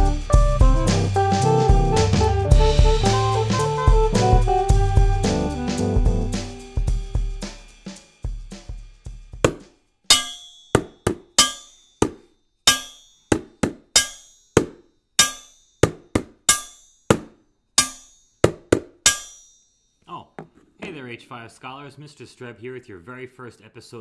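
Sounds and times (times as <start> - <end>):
wooden spoon striking steel bowl: 9.4 - 19.5.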